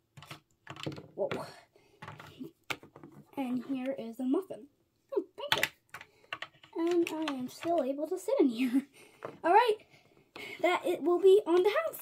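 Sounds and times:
plastic toy pieces clicking: 0:00.2 - 0:01.1, 0:05.5 - 0:07.9.

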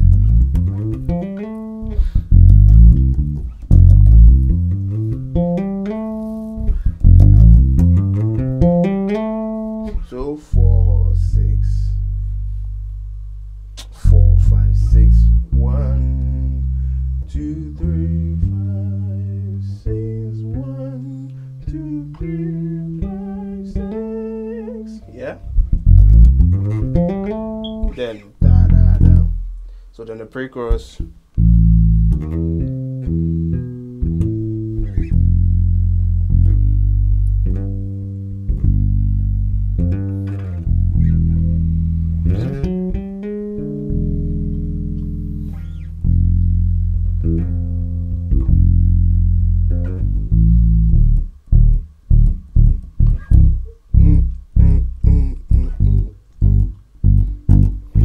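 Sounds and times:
electric bass guitar bassline: 0:00.0 - 0:29.8, 0:30.8 - 0:58.0.

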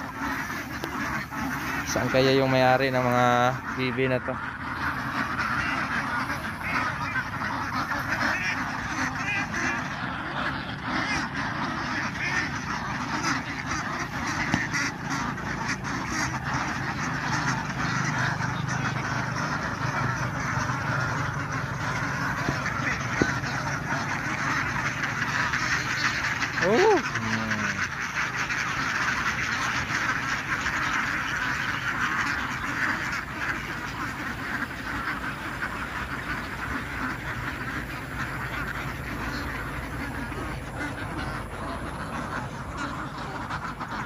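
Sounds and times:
flock of ducks quacking: 0:00.0 - 0:44.0.

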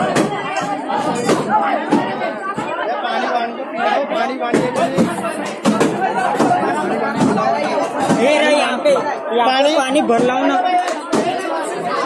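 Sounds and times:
babble of overlapping voices: 0:00.0 - 0:12.0.

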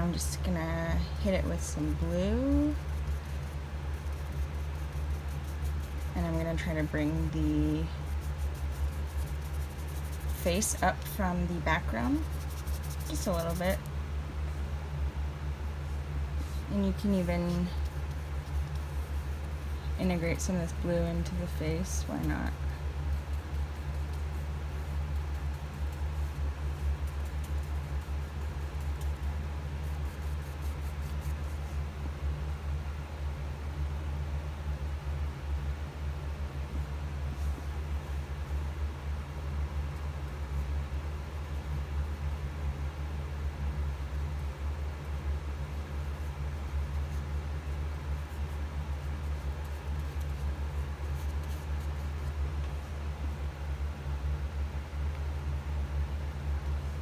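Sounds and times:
low pulsing hum: 0:00.0 - 0:57.0.

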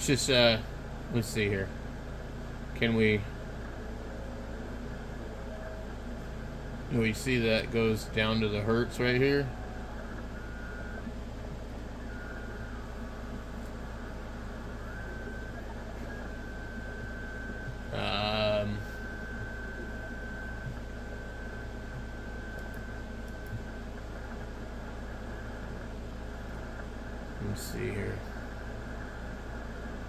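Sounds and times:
low hum: 0:00.0 - 0:30.0
radio static: 0:00.0 - 0:30.0.

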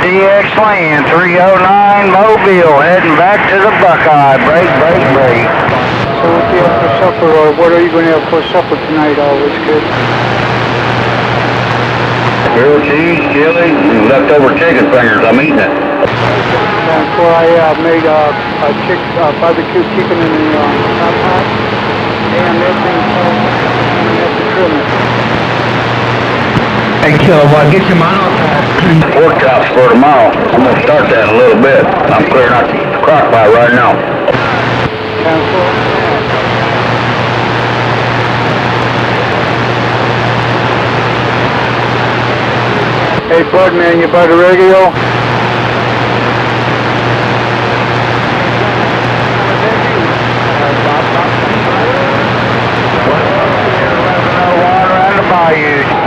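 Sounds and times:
radio static hiss: 0:00.0 - 0:56.0
low hum: 0:00.7 - 0:56.0
faint wavering voice: 0:01.7 - 0:09.9, 0:12.5 - 0:25.2.

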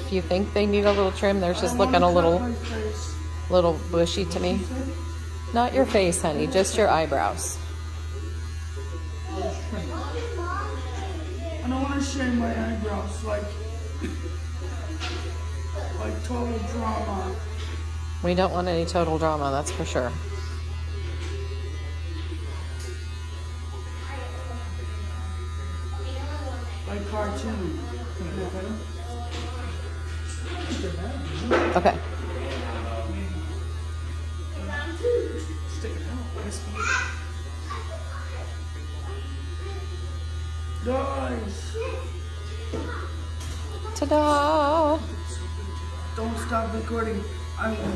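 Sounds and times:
electric hair trimmer buzzing: 0:00.0 - 0:47.9.

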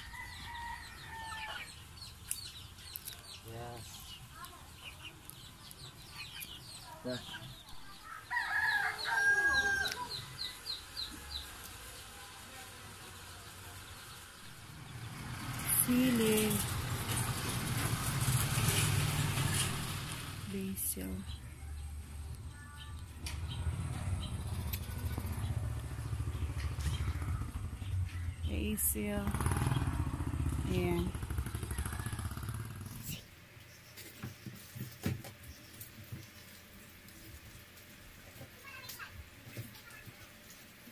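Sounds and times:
rooster crowing: 0:00.0 - 0:01.8, 0:07.9 - 0:10.6, 0:31.6 - 0:32.6
small birds chirping: 0:00.0 - 0:40.9
engine running with fast pulsing: 0:23.2 - 0:33.2.

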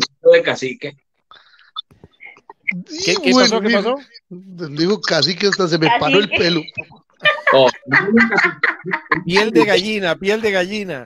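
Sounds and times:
man speaking: 0:02.9 - 0:07.8, 0:09.2 - 0:11.0.

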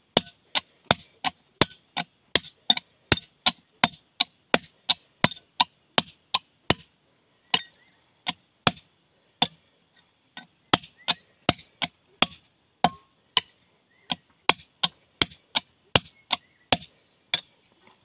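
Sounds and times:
hammer striking steel chisel: 0:00.1 - 0:06.9, 0:07.5 - 0:08.8, 0:10.4 - 0:13.5, 0:14.1 - 0:17.5.

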